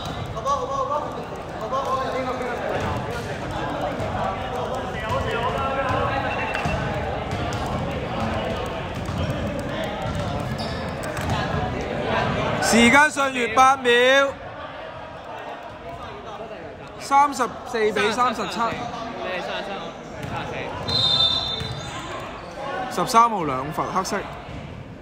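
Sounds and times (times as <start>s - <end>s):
basketball bouncing on indoor court: 0.0s - 12.4s, 20.2s - 22.1s
players' voices and calls: 0.0s - 25.0s.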